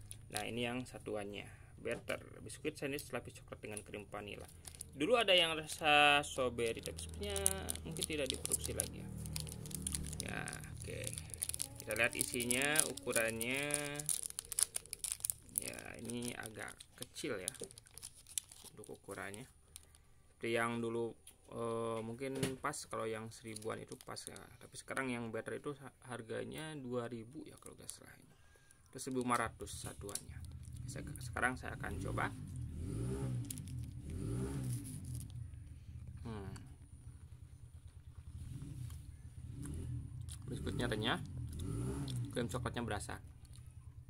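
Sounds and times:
faint crisp crackles: 0:00.0 - 0:01.0, 0:01.9 - 0:44.0
plastic wrapper crinkling: 0:03.6 - 0:20.2, 0:23.0 - 0:24.9, 0:27.4 - 0:28.1, 0:28.9 - 0:32.1, 0:33.4 - 0:35.6
vehicle engine revving: 0:06.6 - 0:11.8, 0:30.6 - 0:36.2, 0:37.1 - 0:42.8.

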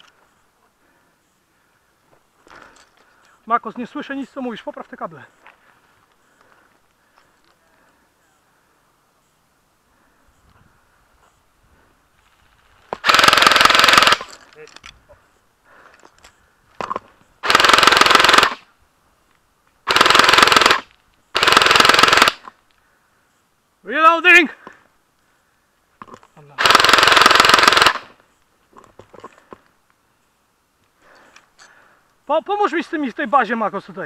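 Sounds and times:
airsoft machine gun bursts: 0:13.0 - 0:14.4, 0:17.4 - 0:18.6, 0:19.9 - 0:22.5, 0:26.6 - 0:28.2.

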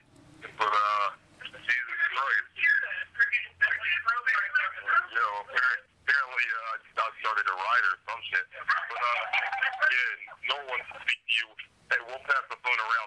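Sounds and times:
male voices through phone speaker: 0:00.4 - 0:13.0.

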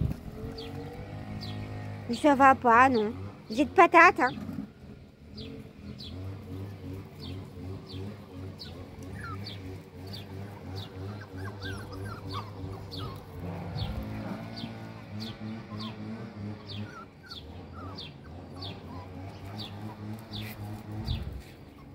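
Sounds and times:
twittering bird calls: 0:00.0 - 0:21.9.

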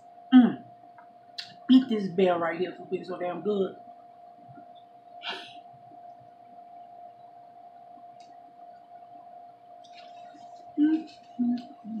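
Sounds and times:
faint steady hum: 0:00.0 - 0:12.0
person eating quietly: 0:09.8 - 0:12.0.

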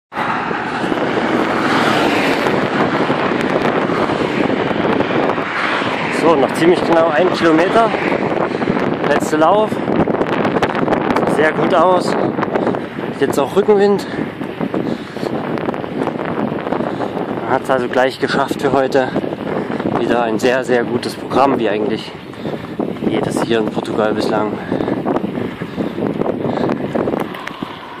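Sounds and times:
wind on microphone: 0:00.1 - 0:28.0.

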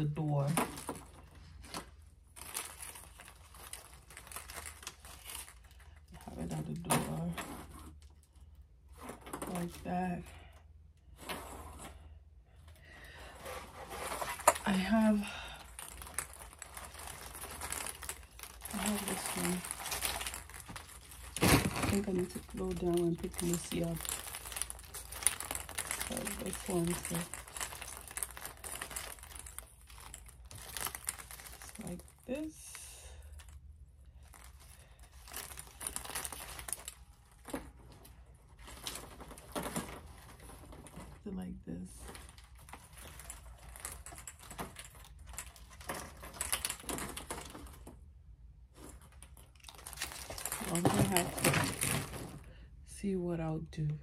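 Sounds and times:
plastic garland rustling: 0:00.0 - 0:52.7.

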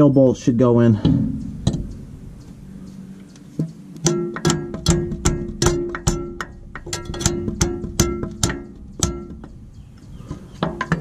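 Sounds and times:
hammer striking steel: 0:04.0 - 0:09.5.

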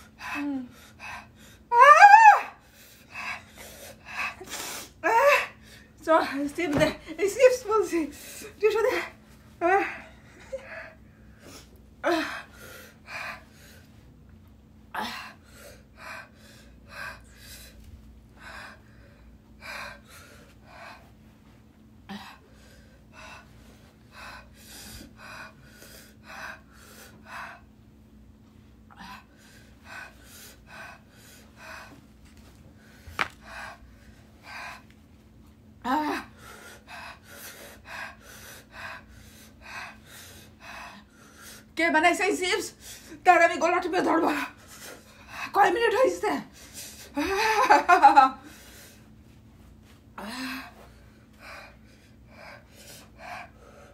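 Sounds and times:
woman crying out: 0:01.7 - 0:02.6
woman gasping and breathing hard: 0:08.1 - 0:13.8, 0:50.2 - 0:53.9
woman gasping: 0:50.2 - 0:53.9.

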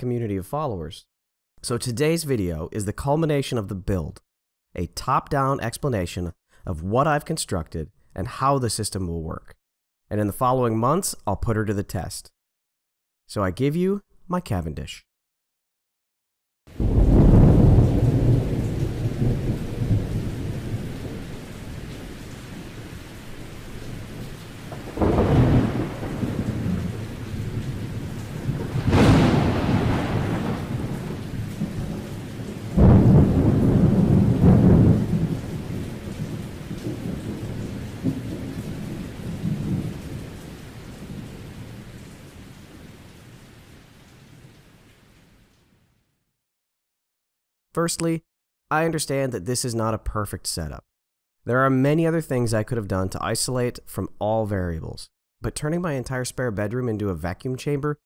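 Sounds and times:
steady rain: 0:16.7 - 0:45.8
sharp thunder crack: 0:16.8 - 0:22.7, 0:24.1 - 0:40.2
thunder rolling: 0:16.8 - 0:41.8.

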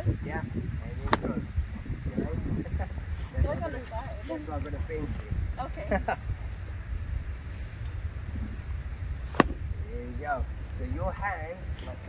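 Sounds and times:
wind rumbling on microphone: 0:00.0 - 0:12.0
person laughing: 0:05.8 - 0:06.2
sharp crack: 0:09.3 - 0:09.8.

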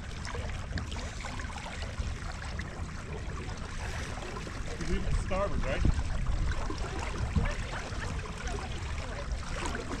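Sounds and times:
water rushing along boat hull: 0:00.0 - 0:10.0
wind rumbling on microphone: 0:00.0 - 0:10.0.

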